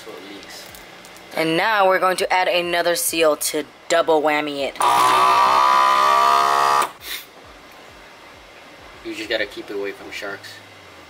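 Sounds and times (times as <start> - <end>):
vacuum sealer motor buzzing: 4.8 - 7.0
brief hiss: 7.0 - 7.4.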